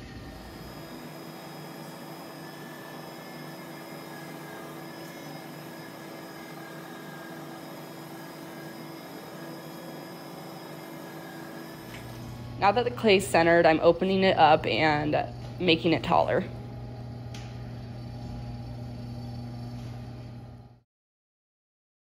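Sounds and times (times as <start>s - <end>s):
potter's wheel whirring: 0.0s - 20.8s.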